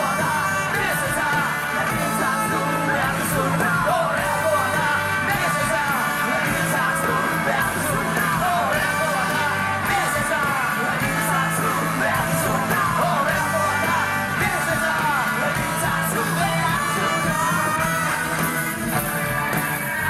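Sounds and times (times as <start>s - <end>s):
lead vocal singing: 0.0s - 20.0s
rock band playing: 0.0s - 20.0s.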